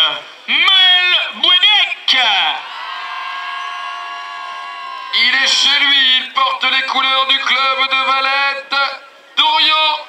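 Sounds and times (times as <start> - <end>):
man announcing over loudspeaker: 0.0 - 2.7, 5.1 - 10.0.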